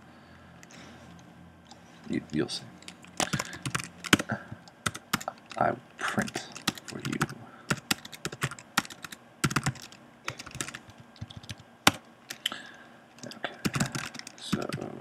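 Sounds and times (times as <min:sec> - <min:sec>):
typing on computer keyboard: 0:02.8 - 0:05.6, 0:06.2 - 0:12.4, 0:13.2 - 0:14.9.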